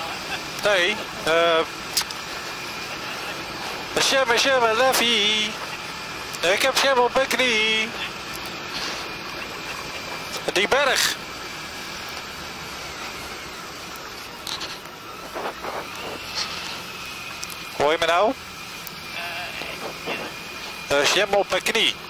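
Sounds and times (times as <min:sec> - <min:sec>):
motorcycle riding noise: 0:00.0 - 0:22.0
wind: 0:00.0 - 0:22.0.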